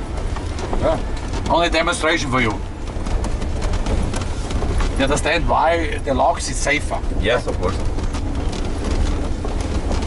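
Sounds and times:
car rumbling over gravel track: 0.0 - 10.0
stones knocking under tyres: 0.0 - 10.0.

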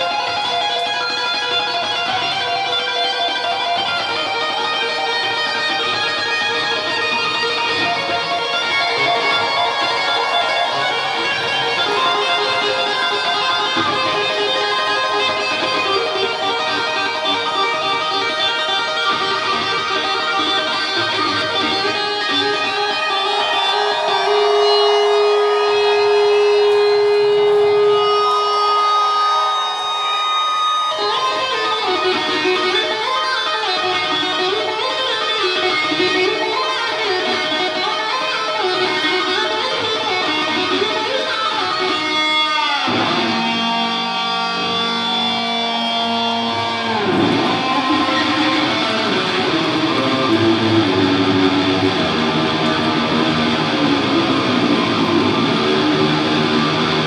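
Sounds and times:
metal band playing live: 0.0 - 28.4, 30.8 - 57.0
electric guitar lead: 0.0 - 57.0.

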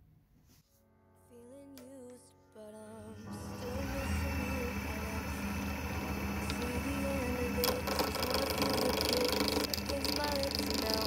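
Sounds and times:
wood lathe motor humming: 3.2 - 11.0.

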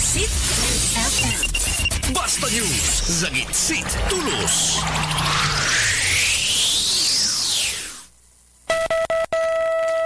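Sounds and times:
electronic time signal beep: 1.1 - 2.1
rising electronic sweep: 2.0 - 8.1.

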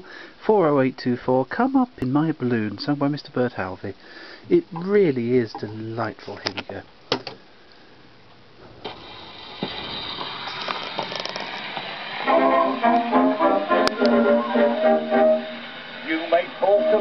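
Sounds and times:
record surface hiss and crackle: 0.0 - 17.0
brass-led orchestral music: 12.2 - 17.0.

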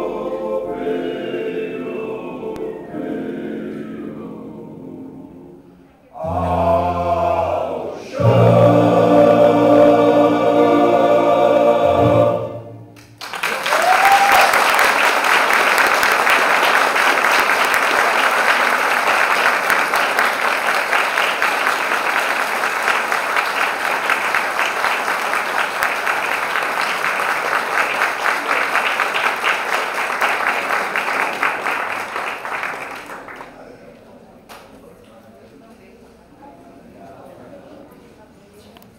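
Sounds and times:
choir closing chord: 0.0 - 13.2
audience applauding: 13.0 - 33.7.

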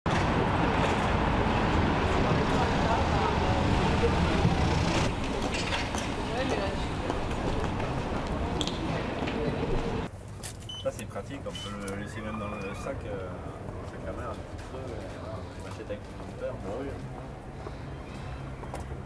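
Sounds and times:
indistinct voices of passersby: 0.1 - 10.1, 11.7 - 19.0
steady traffic noise: 0.1 - 19.0.

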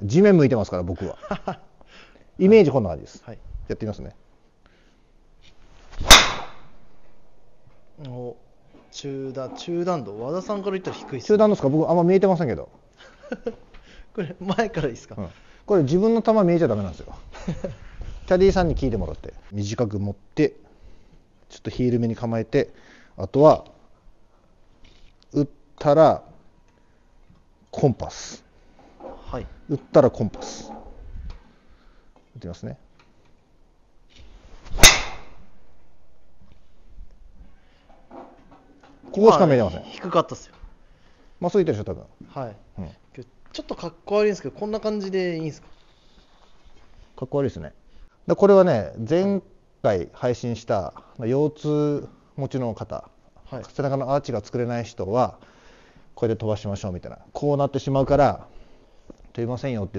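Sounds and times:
golf driver striking ball: 6.0 - 6.7, 34.8 - 35.4.

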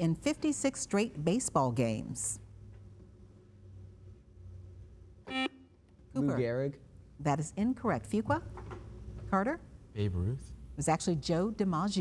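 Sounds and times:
low studio hum: 0.0 - 12.0
buzzer electronic tone: 5.3 - 5.7.

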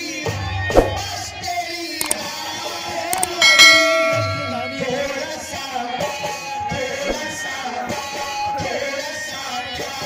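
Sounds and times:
mouse clicks: 3.2 - 3.4
bright bell ding: 3.2 - 5.4.

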